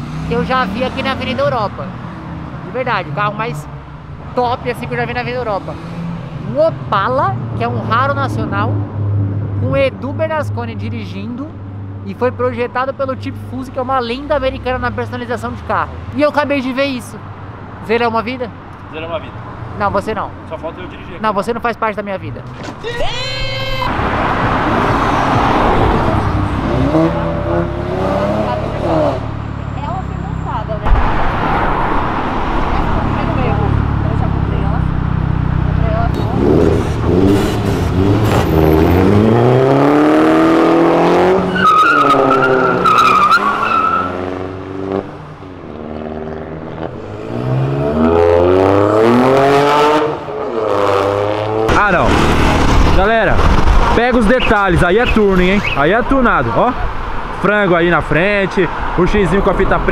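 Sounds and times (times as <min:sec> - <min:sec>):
car engines revving past: 0:00.0 - 0:09.7, 0:23.8 - 0:59.9.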